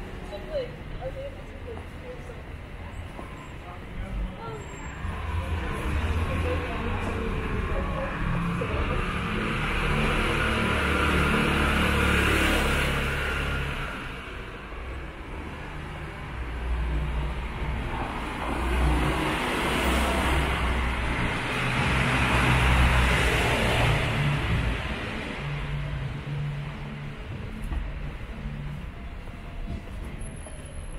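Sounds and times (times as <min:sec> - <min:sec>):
vehicles passing: 0:00.0 - 0:30.9.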